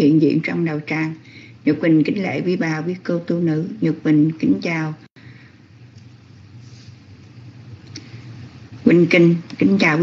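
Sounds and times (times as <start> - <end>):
faint low hum with hiss: 0.0 - 10.0.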